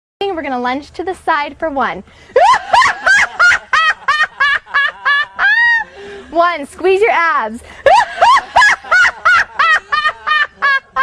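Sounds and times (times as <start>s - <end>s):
woman laughing: 2.4s - 6.2s, 7.8s - 11.0s.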